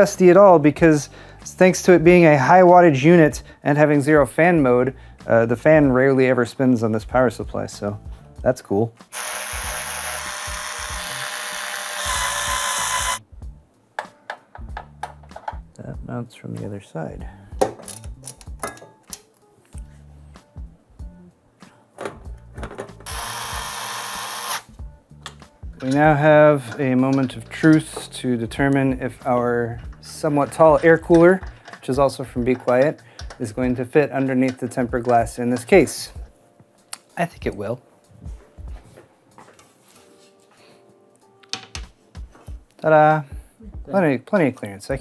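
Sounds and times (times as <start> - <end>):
electric screwdriver running: 9.1 - 13.2, 23.0 - 24.7
glass panel handling sounds: 17.6 - 19.2, 41.4 - 41.9.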